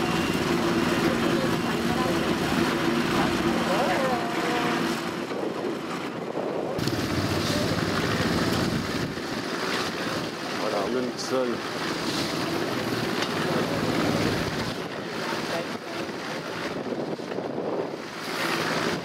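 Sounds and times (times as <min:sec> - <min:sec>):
crowd murmur: 0:00.0 - 0:05.8, 0:06.8 - 0:17.4
wind buffeting microphone: 0:00.1 - 0:10.5, 0:12.0 - 0:19.0.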